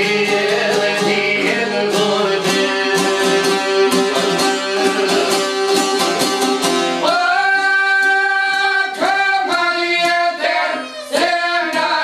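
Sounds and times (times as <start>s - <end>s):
violin: 0.0s - 7.1s, 10.3s - 11.9s
plucked lute folk music: 0.0s - 12.0s.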